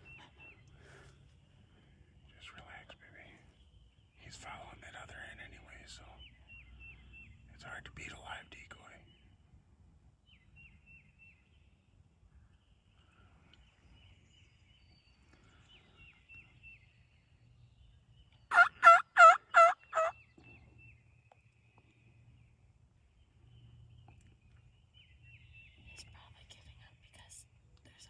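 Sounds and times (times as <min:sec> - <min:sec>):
small birds chirping: 0:00.0 - 0:28.0
turkey calling: 0:18.5 - 0:20.2.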